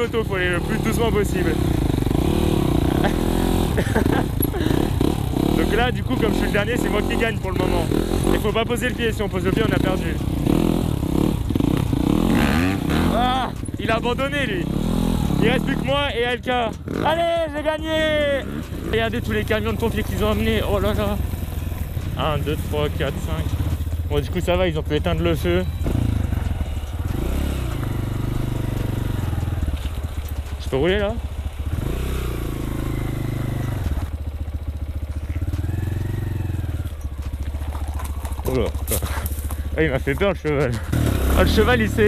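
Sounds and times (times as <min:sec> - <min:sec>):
dirt bike engines at low revs: 0:00.0 - 0:42.0.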